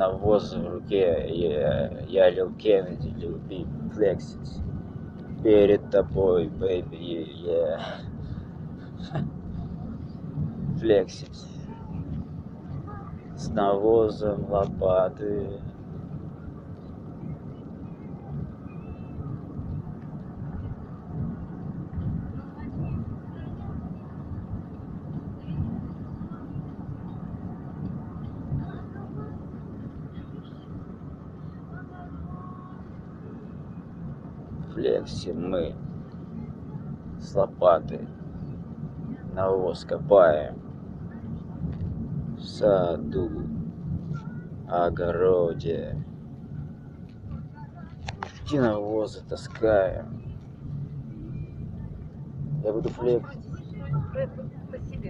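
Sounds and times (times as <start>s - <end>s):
faint voices: 0.0s - 55.0s
steady low rumble: 0.0s - 55.0s.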